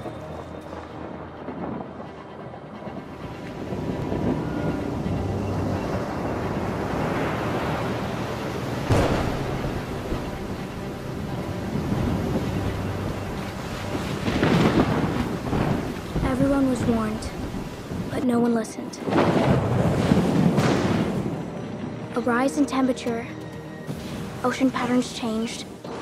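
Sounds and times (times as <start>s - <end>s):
wind: 0.0s - 26.0s
heavy surf: 2.9s - 18.3s.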